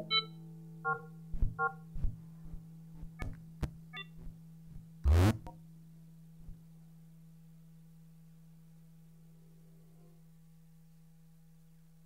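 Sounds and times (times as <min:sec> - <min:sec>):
soft low thuds: 0:01.3 - 0:05.5.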